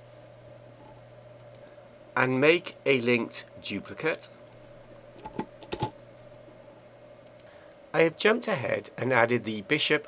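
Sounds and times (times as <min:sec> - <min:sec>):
steady electrical hum: 0:00.0 - 0:10.0
faint short clicks: 0:07.2 - 0:07.5.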